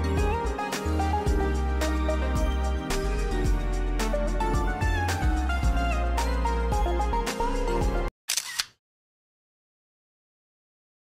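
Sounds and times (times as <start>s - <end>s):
background music: 0.0s - 8.1s
camera shutter clicks: 8.3s - 8.8s.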